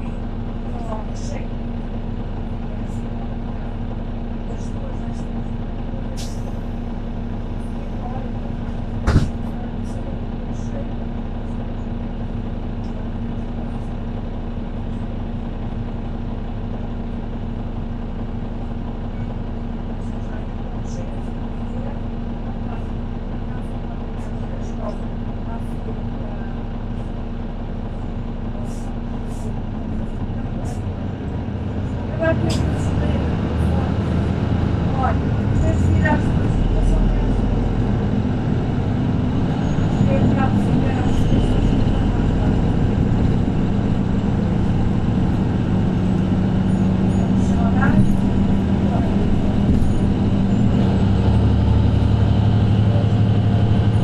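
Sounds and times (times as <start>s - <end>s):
bus diesel engine humming: 0.0s - 54.0s.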